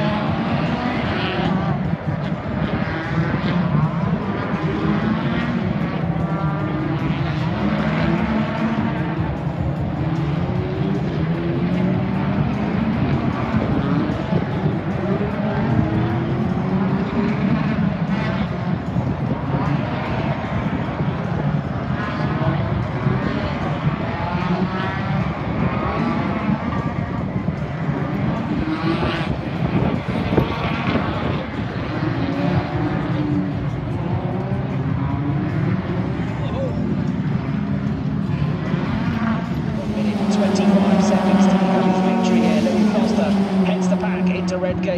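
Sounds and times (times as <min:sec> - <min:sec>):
racing car engines: 0:00.0 - 0:44.9.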